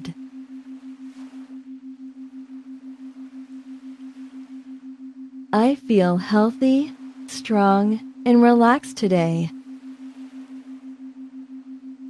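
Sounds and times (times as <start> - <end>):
pulsing low electronic tone: 0.0 - 12.0.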